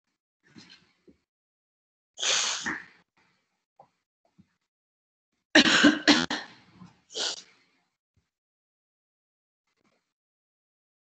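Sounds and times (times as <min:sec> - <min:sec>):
person coughing: 0:05.6 - 0:06.5.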